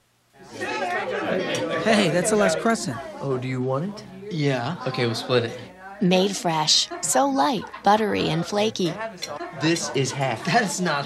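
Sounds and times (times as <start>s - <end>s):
voices chattering: 0.4s - 11.0s.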